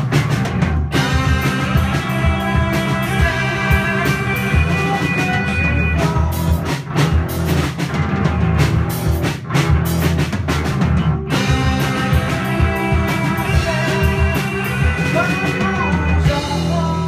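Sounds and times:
drums and cymbals: 0.0s - 17.0s
rock band playing loudly: 0.0s - 17.0s.

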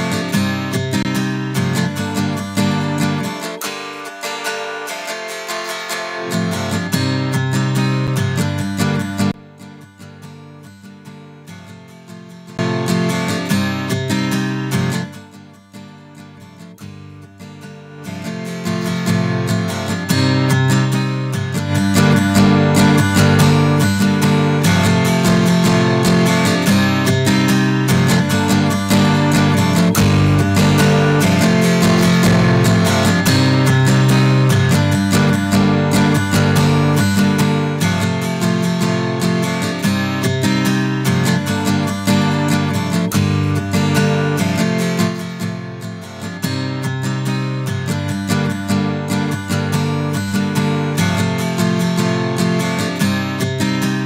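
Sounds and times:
strummed guitar: 0.0s - 54.0s.

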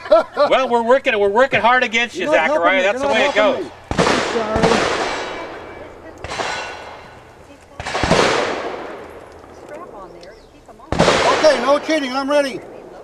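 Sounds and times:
gunshots with rolling echo: 3.0s - 10.2s, 10.8s - 13.0s.

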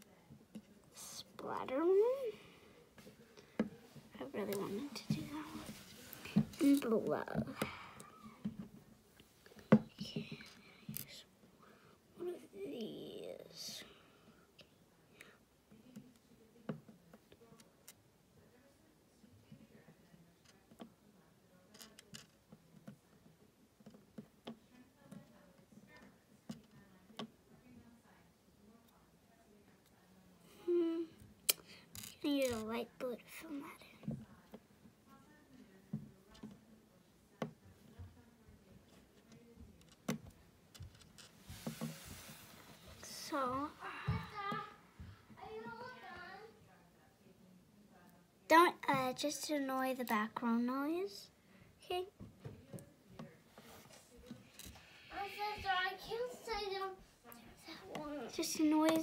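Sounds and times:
soft hiss: 41.2s - 46.8s.

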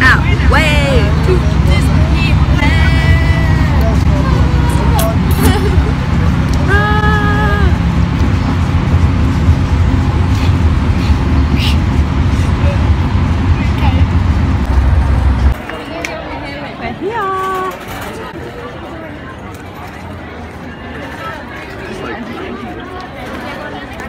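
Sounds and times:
bus road noise rumble: 0.0s - 24.0s
crowd chatter: 0.0s - 24.0s
voices: 0.0s - 24.0s.

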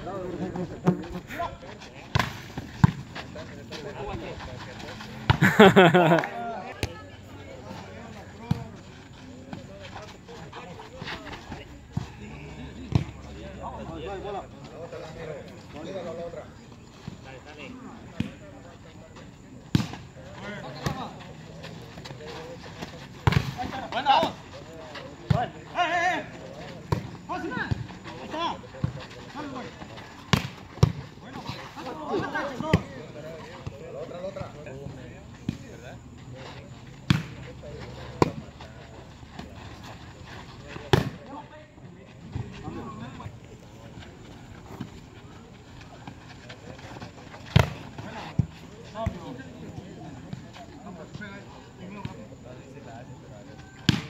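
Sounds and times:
players shouting and talking: 0.0s - 54.0s.

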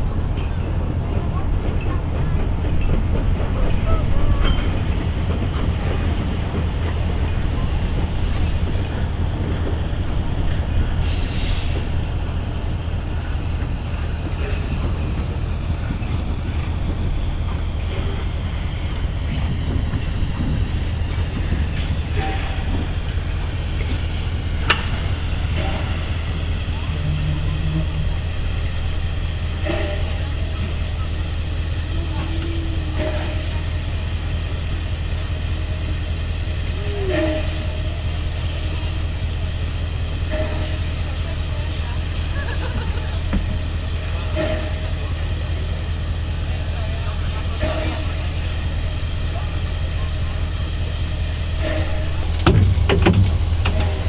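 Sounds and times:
steam locomotive moving slowly: 0.0s - 54.0s
steam hissing: 2.5s - 54.0s.

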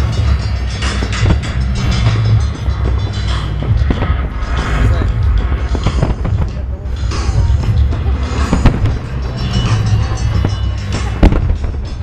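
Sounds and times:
firework crackle: 0.0s - 12.0s
fireworks bursting: 0.0s - 12.0s
low rumble of booms: 0.0s - 12.0s.

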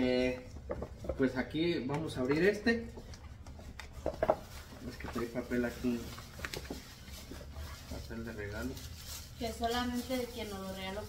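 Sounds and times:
tissue paper rustling: 3.9s - 11.0s.

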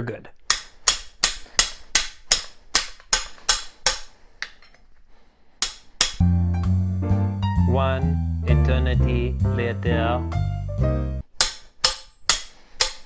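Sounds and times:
hammer striking steel tool: 5.6s - 6.2s, 11.4s - 13.0s
upbeat background music: 6.1s - 11.3s.

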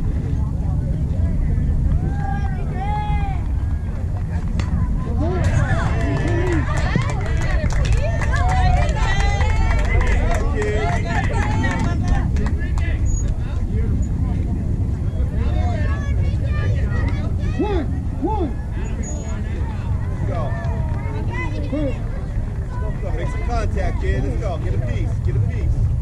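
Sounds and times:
steady low rumble: 0.0s - 26.0s
distant voices calling out: 1.7s - 26.0s.

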